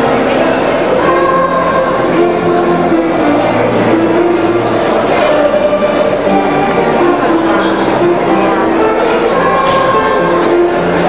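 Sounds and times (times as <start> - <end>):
children's music ensemble: 0.0 - 11.0
crowd chatter: 0.0 - 11.0.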